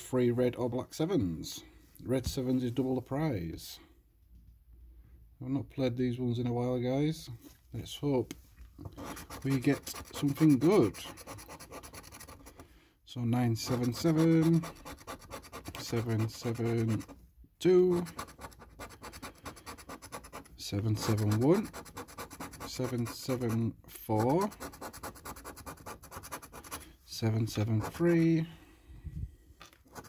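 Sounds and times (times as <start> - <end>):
coin scratching card: 8.9 - 12.6, 13.6 - 17.2, 17.9 - 23.6, 24.2 - 26.9, 27.5 - 28.3.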